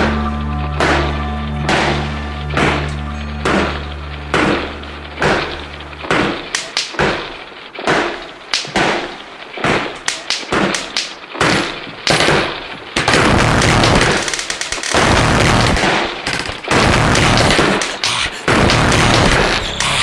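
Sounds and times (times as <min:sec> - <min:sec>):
gunshots with ringing tail: 0:01.7 - 0:20.0
rapid gunfire: 0:05.2 - 0:20.0.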